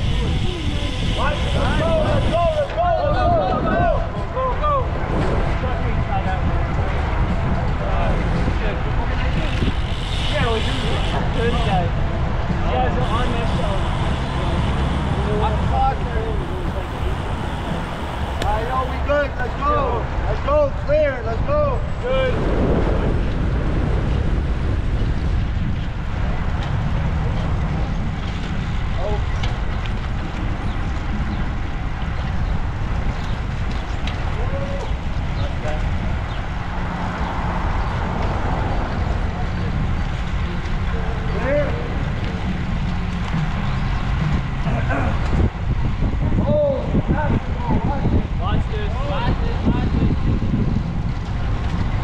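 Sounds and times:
wind rumble on microphone: 0:00.0 - 0:52.0.

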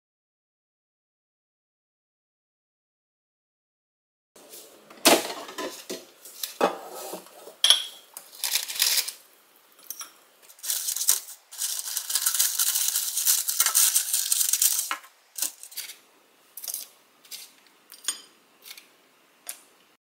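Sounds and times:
ceramic plate on stone counter: 0:04.9 - 0:19.7
chopsticks scraping in metal basket: 0:05.0 - 0:07.6, 0:08.3 - 0:09.2, 0:09.8 - 0:16.0, 0:16.6 - 0:18.9
crackly rustling scraping: 0:08.2 - 0:09.3, 0:10.4 - 0:16.0.

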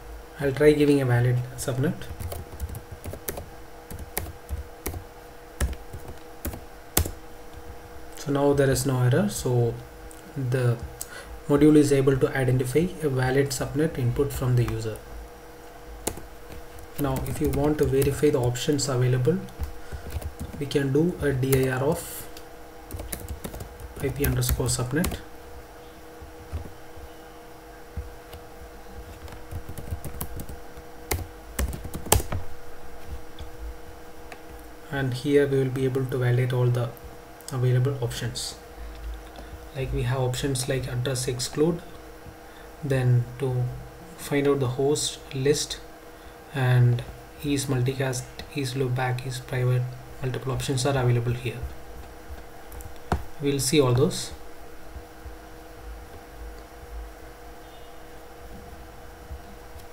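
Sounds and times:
faint steady hum: 0:00.0 - 0:59.9
computer keyboard typing: 0:02.0 - 0:05.0, 0:05.6 - 0:07.8, 0:16.0 - 0:20.7, 0:22.9 - 0:25.2, 0:26.2 - 0:26.8, 0:29.0 - 0:32.4.

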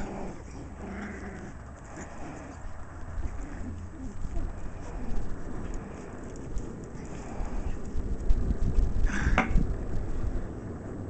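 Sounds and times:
puppies vocalizing: 0:00.0 - 0:08.0
low rumble: 0:00.0 - 0:11.0.

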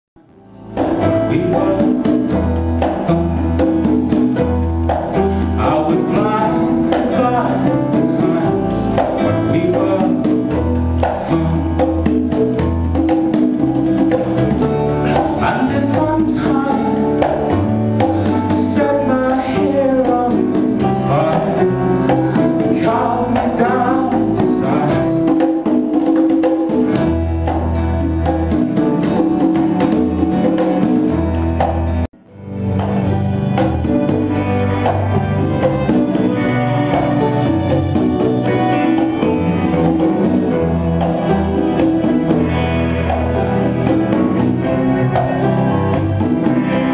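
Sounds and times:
bass guitar: 0:00.2 - 0:46.9
congas: 0:00.2 - 0:46.9
electric guitar: 0:00.2 - 0:46.9
man singing: 0:01.0 - 0:03.9, 0:05.4 - 0:12.2, 0:15.0 - 0:25.6.

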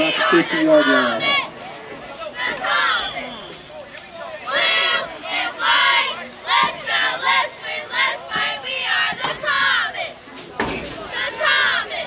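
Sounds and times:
cheerleaders chanting in unison: 0:00.0 - 0:01.6, 0:02.2 - 0:03.5, 0:04.2 - 0:12.0.

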